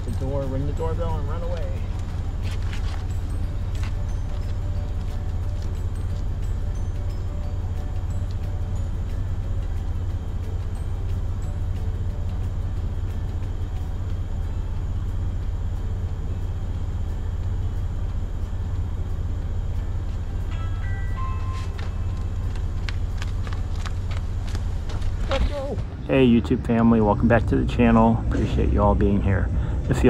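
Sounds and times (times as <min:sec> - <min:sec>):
car engine idling: 0:00.0 - 0:30.0.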